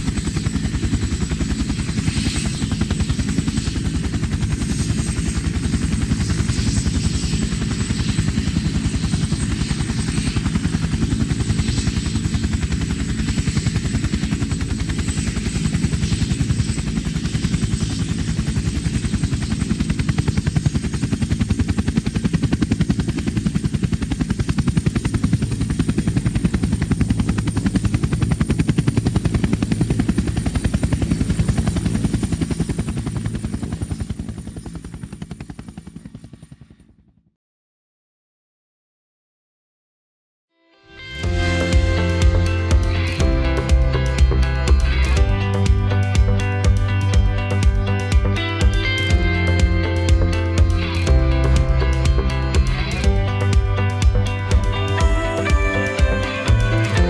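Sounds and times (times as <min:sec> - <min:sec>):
helicopter rotor chopping: 0:00.0 - 0:37.2, 0:41.2 - 0:57.0
high whine: 0:41.0 - 0:57.0.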